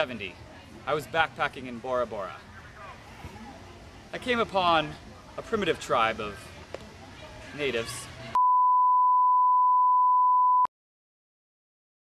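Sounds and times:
steady test tone beep: 8.4s - 10.7s.

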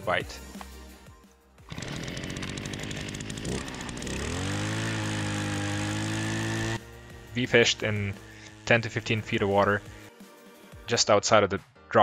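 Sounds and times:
ice auger engine running: 1.7s - 10.1s.

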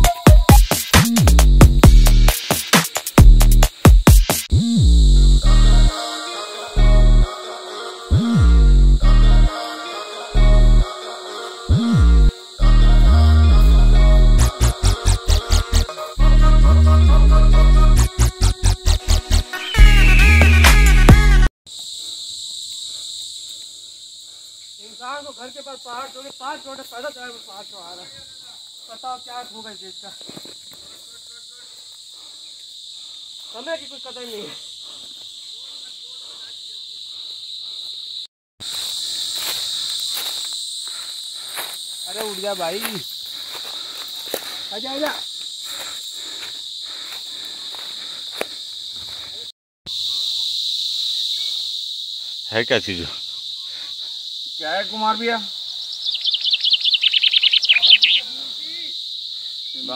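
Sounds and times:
insects droning: 0.0s - 59.9s
footsteps on dry leaves and stones: 30.2s - 30.9s, 38.6s - 49.5s.

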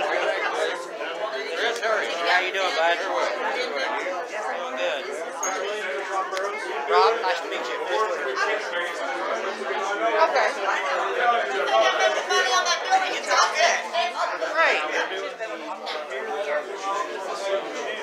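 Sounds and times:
overlapping chatter of voices: 0.0s - 18.0s.

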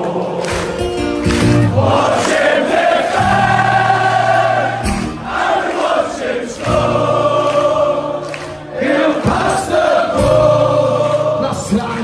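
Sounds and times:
amplified acoustic guitar: 0.0s - 12.0s
crowd singing together: 0.0s - 12.0s.

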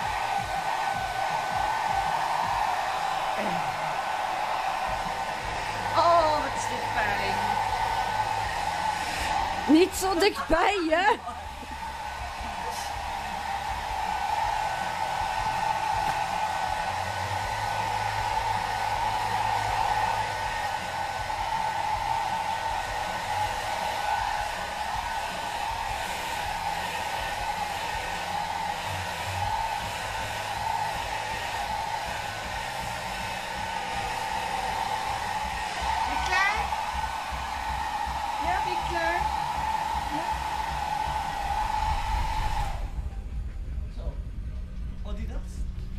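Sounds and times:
hair dryer running: 0.0s - 43.2s.

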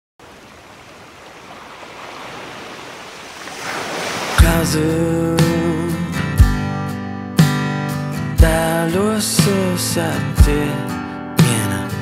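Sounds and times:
sea surf washing in: 0.2s - 6.0s.

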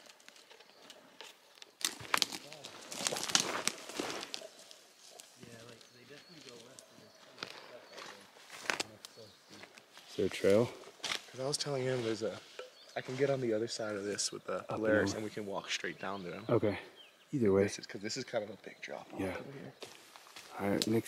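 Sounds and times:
footsteps through brush: 0.0s - 14.3s, 19.8s - 21.0s
scrub rustling and snapping: 1.5s - 7.6s, 8.5s - 10.1s.

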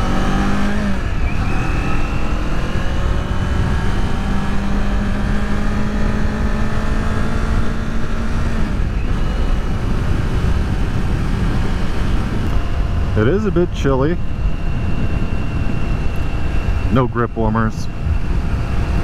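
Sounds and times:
heavy wind: 0.0s - 19.0s
motorcycle engine cruising: 0.0s - 19.0s
road rumble: 0.0s - 19.0s.

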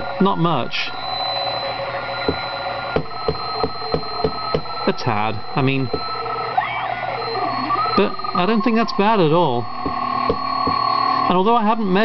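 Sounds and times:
radio receiver whistle tones with pulses: 0.0s - 12.0s.

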